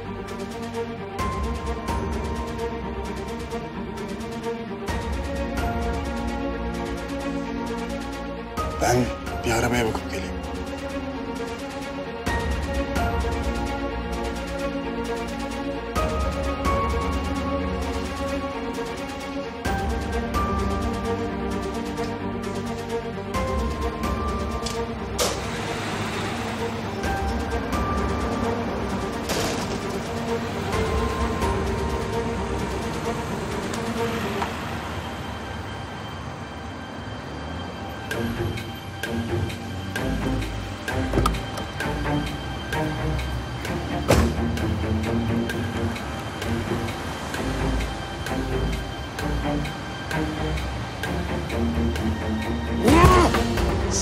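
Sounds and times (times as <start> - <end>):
suspenseful background music: 0.0 - 54.0
street traffic rushing past: 10.1 - 54.0.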